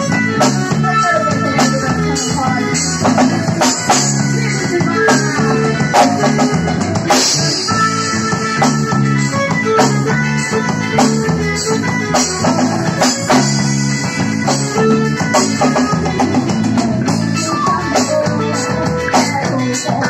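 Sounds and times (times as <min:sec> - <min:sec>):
drum beats: 0:00.0 - 0:20.0
live band playing instrumental: 0:00.0 - 0:20.0.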